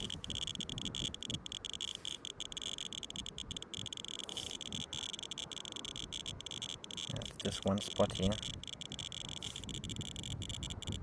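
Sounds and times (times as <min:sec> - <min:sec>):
radiation detector crackling clicks: 0:00.0 - 0:11.0.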